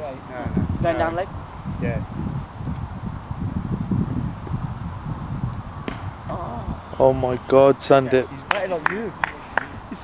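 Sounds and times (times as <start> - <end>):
wind on microphone: 0.0 - 10.0
cricket bat striking ball: 5.9 - 6.2.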